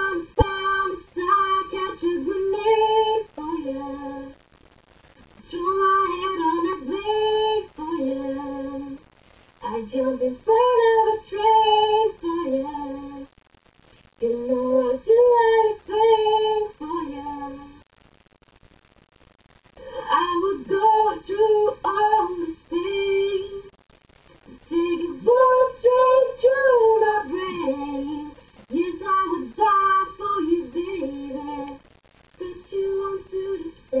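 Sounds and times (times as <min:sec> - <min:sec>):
woman singing unaccompanied: 0:00.0 - 0:04.4, 0:05.4 - 0:09.0, 0:09.6 - 0:13.3, 0:14.2 - 0:17.8, 0:19.8 - 0:23.7, 0:24.4 - 0:31.8, 0:32.4 - 0:34.0.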